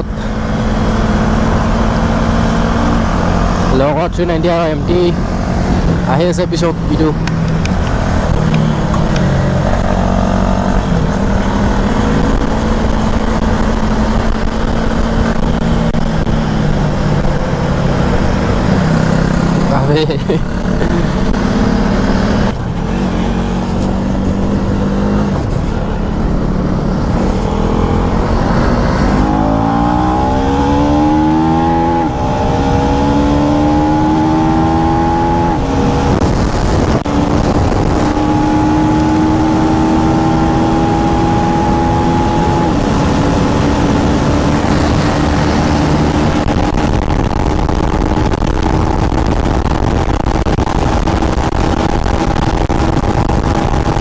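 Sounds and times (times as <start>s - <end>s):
motorcycle engine accelerating: 0.0s - 54.0s
wind rush over microphone: 4.5s - 54.0s.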